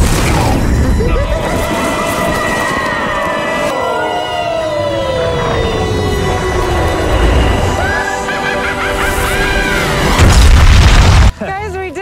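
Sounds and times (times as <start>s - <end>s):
soundtrack music: 0.0s - 12.0s
loud explosion boom: 10.1s - 11.3s.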